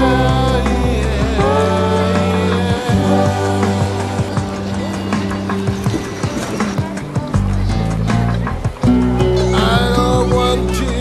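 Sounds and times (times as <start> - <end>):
held low music notes: 0.0 - 11.0.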